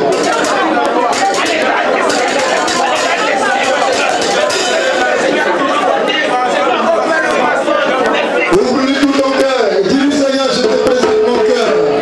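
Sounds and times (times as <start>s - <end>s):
congregation praying aloud: 0.0s - 12.0s.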